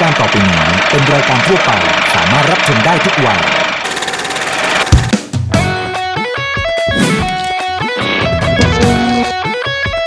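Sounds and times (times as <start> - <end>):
fast mechanical clatter: 0.0 - 5.2.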